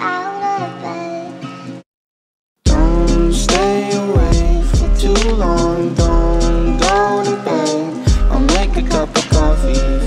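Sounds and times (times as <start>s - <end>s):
pop music with sung voice: 2.7s - 10.0s.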